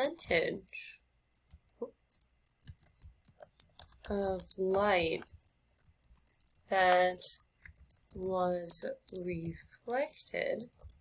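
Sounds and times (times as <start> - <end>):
computer keyboard typing: 0.0 - 11.0.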